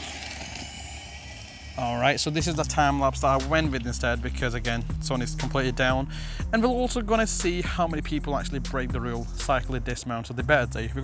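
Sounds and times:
low rumble: 0:00.4 - 0:11.0
man speaking: 0:01.8 - 0:11.0.

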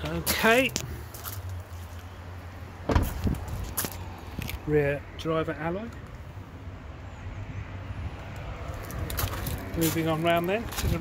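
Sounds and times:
car door shutting: 0:02.8 - 0:03.4.

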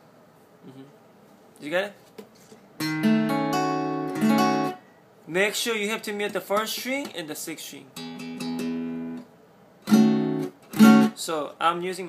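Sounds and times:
acoustic guitar chord strummed: 0:02.8 - 0:04.8, 0:08.0 - 0:11.2.

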